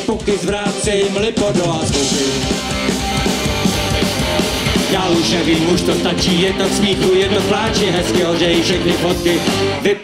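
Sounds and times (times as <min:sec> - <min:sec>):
bass guitar: 0:00.0 - 0:10.0
drum kit: 0:00.0 - 0:10.0
electric guitars: 0:00.0 - 0:10.0.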